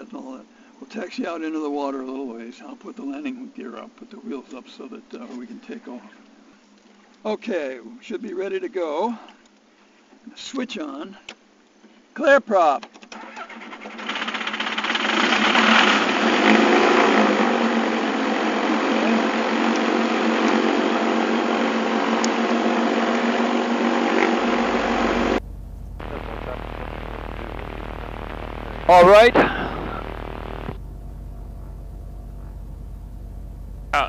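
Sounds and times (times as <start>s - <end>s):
engine cranking: 13.2s - 17.2s
propeller engine running: 14.1s - 34.0s.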